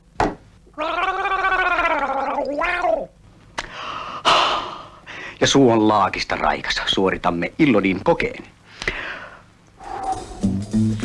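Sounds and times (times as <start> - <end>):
man gargling: 0.7 - 3.1.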